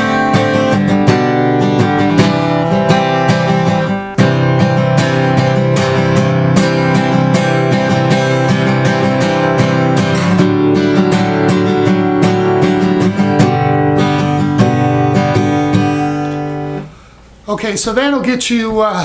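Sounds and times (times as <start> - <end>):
acoustic guitar strumming: 0.0 - 17.5.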